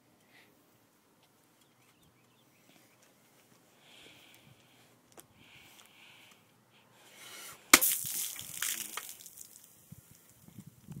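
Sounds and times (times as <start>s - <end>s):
fist smacking soda can: 7.8s - 9.6s
small crackles: 8.0s - 11.0s.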